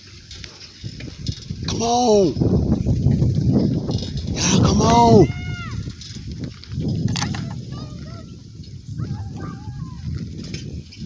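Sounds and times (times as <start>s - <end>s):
bicycle rolling noise: 0.0s - 11.0s
wind noise: 0.0s - 11.0s.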